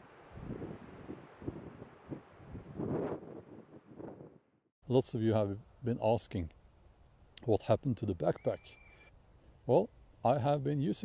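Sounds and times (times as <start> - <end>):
wind buffeting microphone: 0.0 - 4.4.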